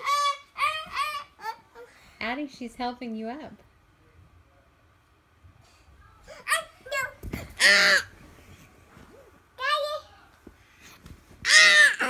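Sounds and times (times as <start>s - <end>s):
toddler squealing: 11.5s - 12.0s.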